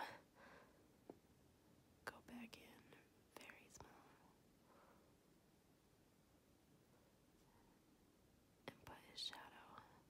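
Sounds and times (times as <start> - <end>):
soft breathy sounds: 0.0 - 1.2, 2.0 - 5.4, 6.8 - 10.0.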